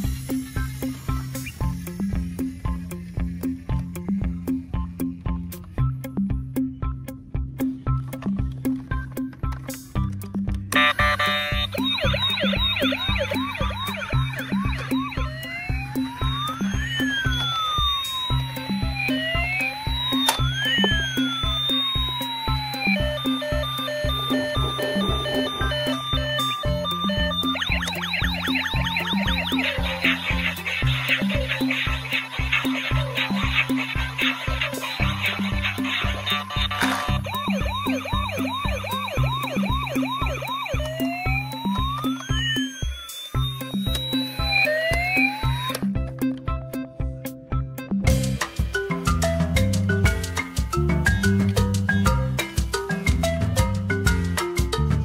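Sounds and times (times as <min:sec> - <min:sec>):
music with steady beat: 0:00.0 - 0:55.0
toy siren wailing: 0:10.8 - 0:46.0.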